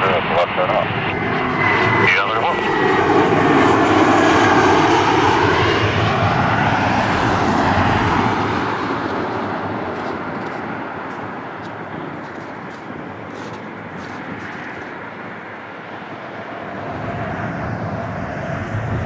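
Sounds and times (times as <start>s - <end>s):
jet airliner passing overhead: 0.0s - 19.0s.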